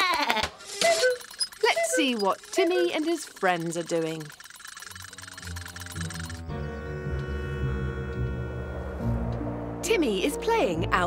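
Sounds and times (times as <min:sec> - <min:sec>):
low sustained chords: 0:06.4 - 0:11.0.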